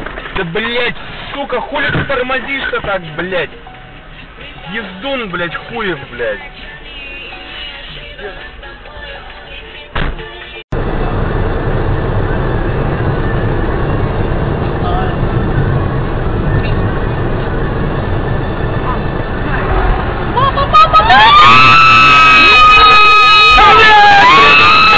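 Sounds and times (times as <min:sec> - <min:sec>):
car cabin road rumble: 0:00.0 - 0:24.9
people screaming: 0:20.3 - 0:24.9.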